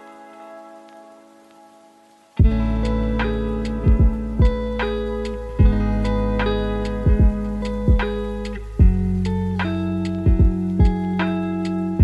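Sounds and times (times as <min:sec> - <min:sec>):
background music soft chords: 0:00.0 - 0:12.0.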